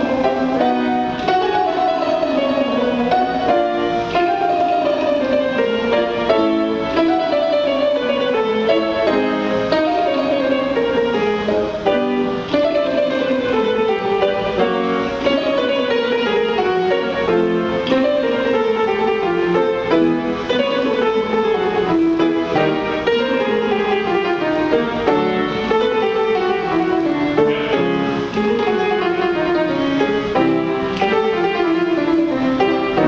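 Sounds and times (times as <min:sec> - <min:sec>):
piano: 0:00.0 - 0:33.0.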